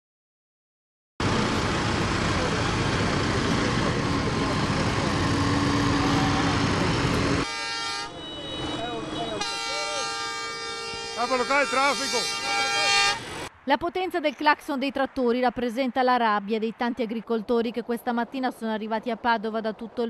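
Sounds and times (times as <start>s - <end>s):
tractor engines driving past: 1.2s - 13.6s
horns sounding: 3.6s - 13.5s.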